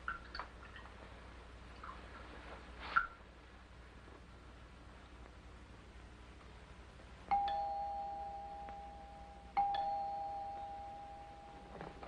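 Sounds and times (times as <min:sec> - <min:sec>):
two-tone door chime: 0:07.3 - 0:12.0.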